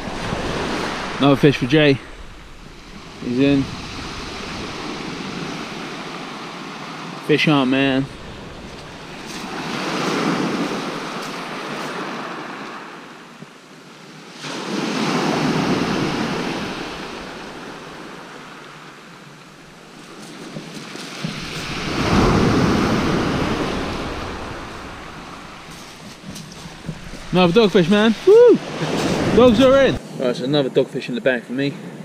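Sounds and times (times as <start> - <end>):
waves breaking on shingle: 0.0 - 6.9, 7.8 - 12.8, 14.5 - 30.0.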